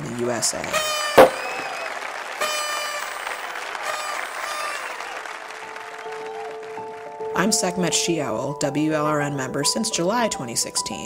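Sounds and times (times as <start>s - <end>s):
crowd applauding and cheering: 0.1s - 7.5s
high-pitched shouted cheers: 0.9s - 5.4s
sharp loud hit: 1.2s - 1.7s.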